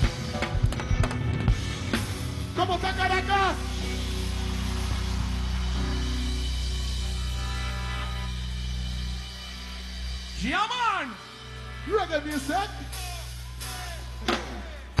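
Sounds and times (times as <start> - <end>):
reggae band playing: 0.0 - 15.0.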